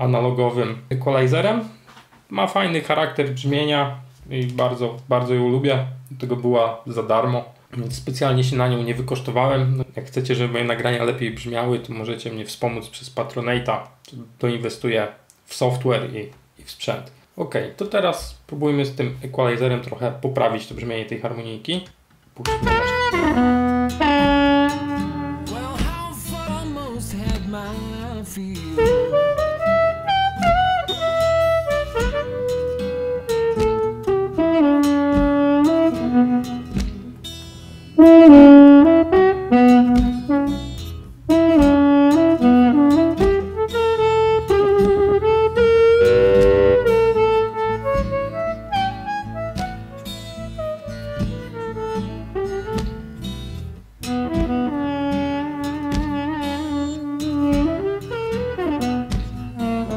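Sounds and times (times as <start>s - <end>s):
blues harmonica lead line: 22.4s - 59.9s
steady band beat: 22.5s - 26.2s, 28.8s - 32.8s, 33.4s - 37.1s, 38.0s - 43.6s, 44.6s - 50.1s, 51.0s - 51.7s.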